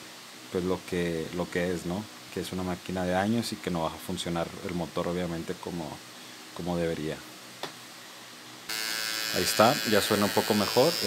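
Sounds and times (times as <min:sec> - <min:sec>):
cordless trimmer buzzing: 0:08.7 - 0:11.0.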